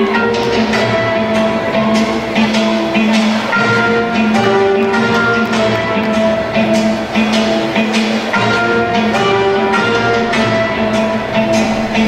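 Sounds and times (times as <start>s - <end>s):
instrumental dance music: 0.0s - 12.0s.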